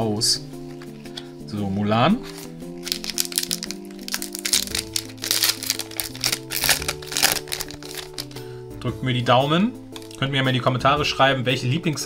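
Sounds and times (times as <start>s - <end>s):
background music: 0.0s - 12.0s
foil wrapper crinkling: 2.2s - 8.4s.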